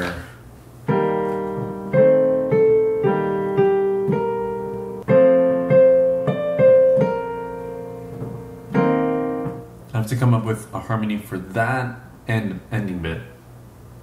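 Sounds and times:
digital piano slow melody: 0.8 - 9.9.

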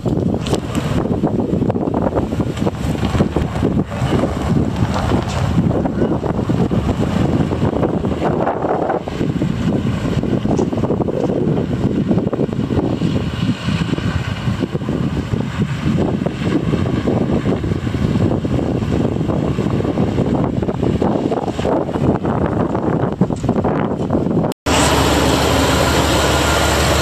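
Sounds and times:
low rumble: 0.0 - 27.0
wind buffeting microphone: 0.0 - 27.0.

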